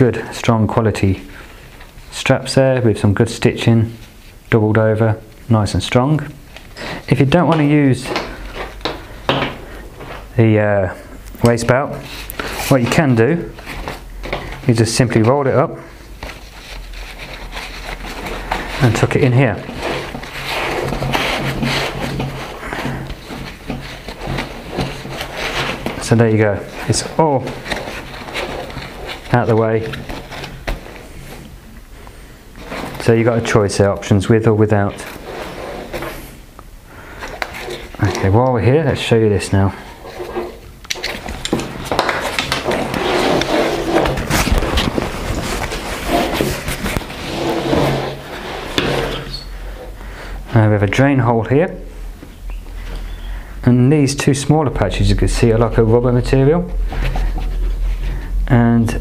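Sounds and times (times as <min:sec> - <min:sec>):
nylon fabric rustling and scraping: 0:10.9 - 0:31.7, 0:32.6 - 0:34.1, 0:34.8 - 0:36.5, 0:37.2 - 0:50.0, 0:54.7 - 0:58.3.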